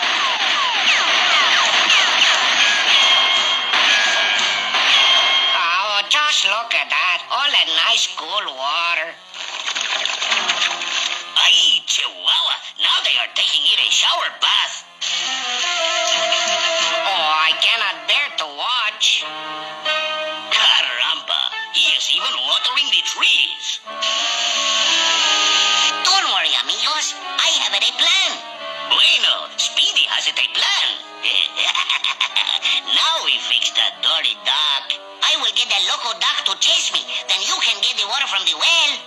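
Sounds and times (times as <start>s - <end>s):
orchestral background music: 0.0s - 39.0s
cartoon character voices: 20.5s - 23.8s, 26.1s - 39.0s.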